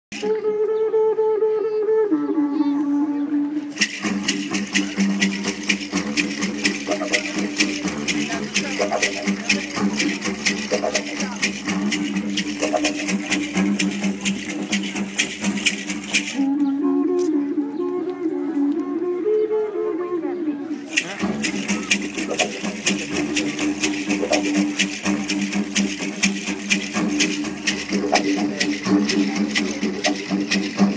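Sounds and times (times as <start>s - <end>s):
didgeridoo drone: 2.8s - 19.9s, 20.8s - 30.9s
fast high-pitched rattling rhythm: 3.7s - 16.4s, 20.9s - 30.9s.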